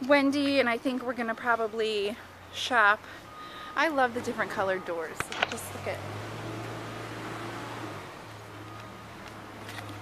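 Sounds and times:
street background hiss: 0.0 - 10.0.

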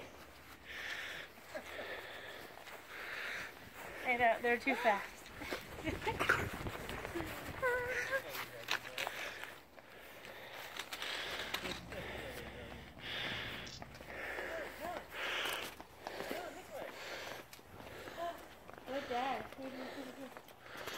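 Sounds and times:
footsteps outdoors: 0.0 - 20.9
scuffing and rustling: 1.4 - 20.9.

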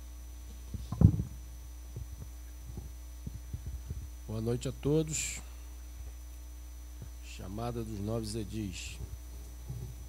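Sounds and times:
electrical hum: 0.0 - 10.0
microphone handling knocks: 0.7 - 4.2, 8.9 - 10.0
microphone thump: 0.7 - 4.2, 8.9 - 10.0.

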